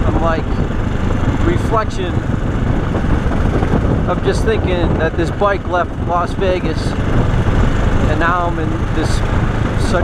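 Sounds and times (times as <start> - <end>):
motorcycle riding on gravel: 0.0 - 10.0.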